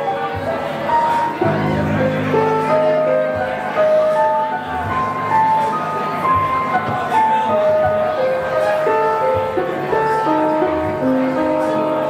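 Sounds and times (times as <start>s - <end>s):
slow piano melody: 0.0s - 12.0s.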